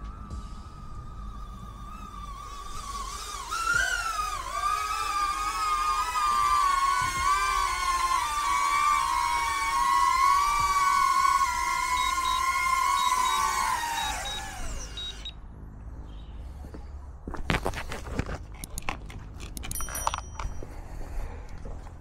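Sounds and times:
drone propellers high-pitched whine: 0.0 - 15.7.

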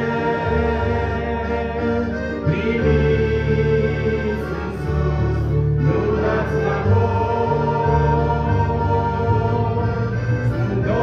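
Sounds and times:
choir singing: 0.0 - 11.0
instrumental accompaniment: 0.0 - 11.0.

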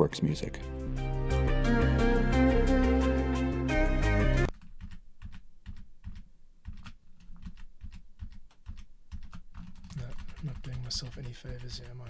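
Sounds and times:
keyboard keys clicking: 4.5 - 12.0.

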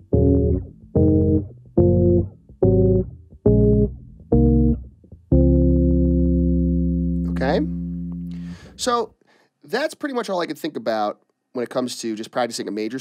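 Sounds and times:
electric bass plucking chords: 0.0 - 9.0.

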